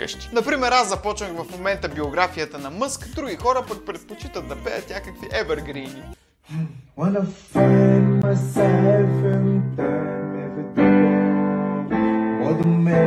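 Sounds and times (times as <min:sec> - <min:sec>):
digital piano chords: 0:07.6 - 0:13.0.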